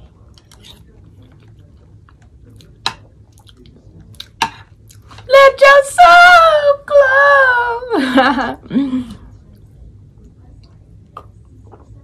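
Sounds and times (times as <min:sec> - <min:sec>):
food being chewed: 0:00.0 - 0:05.3.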